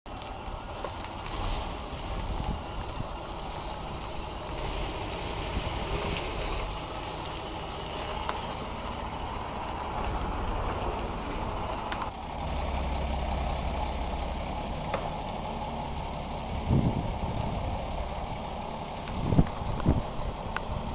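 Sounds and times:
bus engine rumbling: 0.1 - 20.9
outdoor noise: 0.1 - 20.9.

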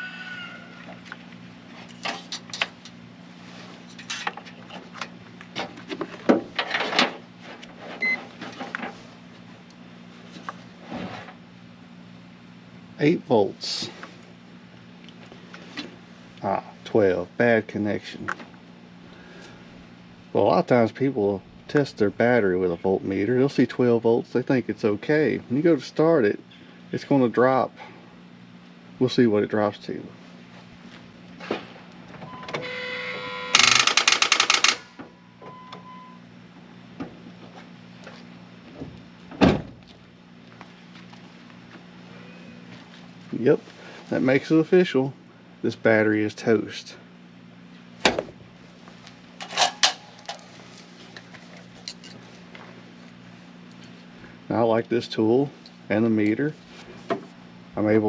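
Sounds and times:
steady low hum: 0.0 - 58.0
warning tone: 32.2 - 34.0, 34.7 - 36.3, 42.1 - 42.7
starter rapid clicking: 33.6 - 34.9.

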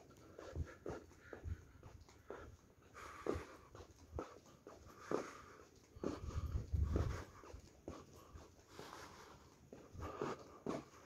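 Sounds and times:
footsteps on carpet: 0.0 - 11.0.

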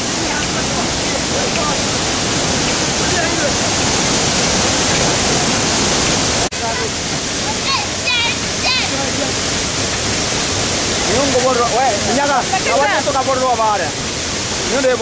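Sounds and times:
shallow rocky stream rushing: 0.0 - 15.0
waterfall rushing over rocks: 0.0 - 15.0.

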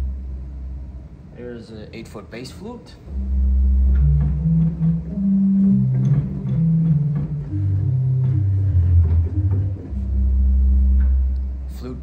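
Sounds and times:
low pipe organ notes: 3.1 - 12.0.

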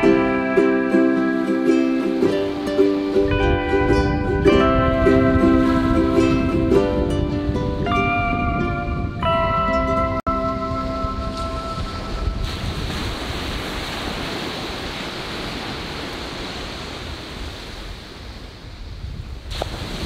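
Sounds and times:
plucked-string music: 0.0 - 12.6
ocean surf on beach: 0.0 - 20.0.

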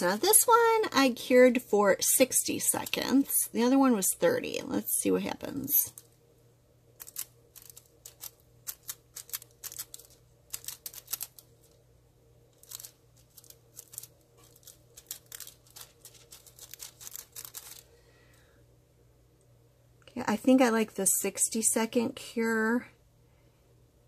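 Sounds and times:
foil crinkling under fingertips: 7.0 - 11.5, 12.6 - 17.9.

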